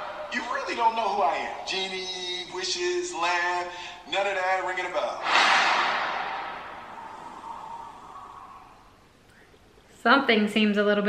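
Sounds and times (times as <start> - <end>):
trailer sound hit through phone speaker: 5.2 - 7.9.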